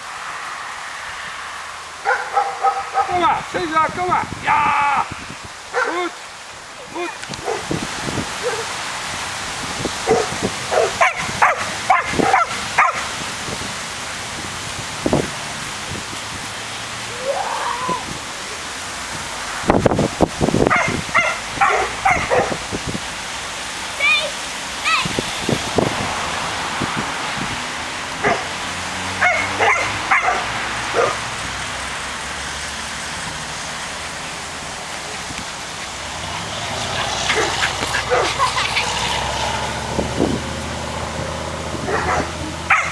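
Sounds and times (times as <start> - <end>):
dog barking: 2.0 - 3.2, 5.7 - 6.1, 7.4 - 7.6, 8.4 - 8.7, 10.0 - 13.1, 20.7 - 22.6, 28.2 - 28.5, 29.2 - 31.2, 37.0 - 38.7, 41.9 - 42.9.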